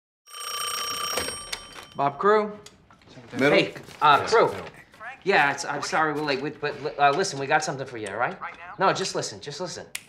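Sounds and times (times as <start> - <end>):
telephone bell ringing: 0.3 - 2.0.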